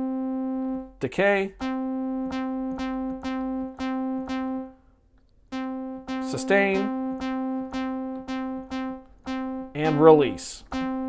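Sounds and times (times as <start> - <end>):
synth repeating single note: 0.0 - 4.8, 5.5 - 11.0.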